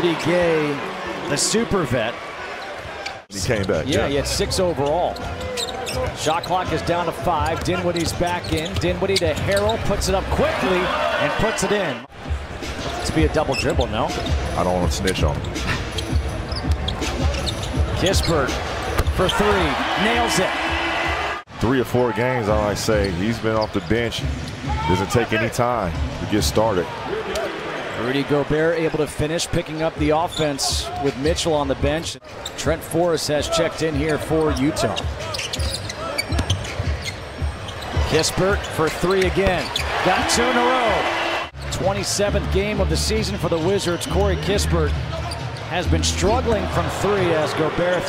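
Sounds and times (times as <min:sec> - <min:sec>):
arena crowd noise: 0:00.0 - 0:48.0.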